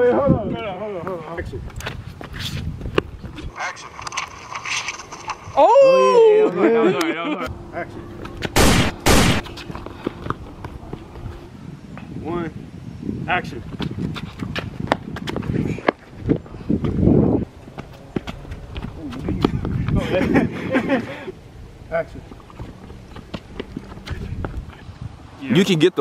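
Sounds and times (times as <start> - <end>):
low outdoor rumble: 7.5 - 12.0
gunshot blast: 8.6 - 9.4.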